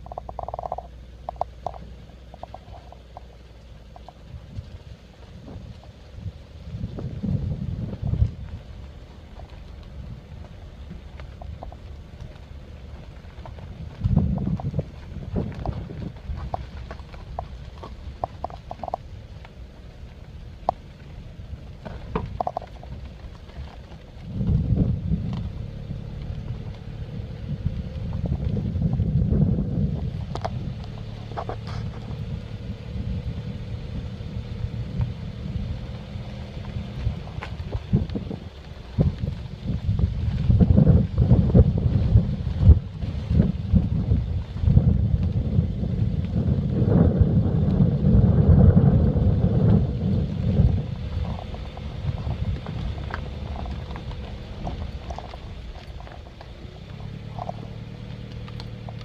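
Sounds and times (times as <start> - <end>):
wind rumble on microphone: 0.0 - 59.0.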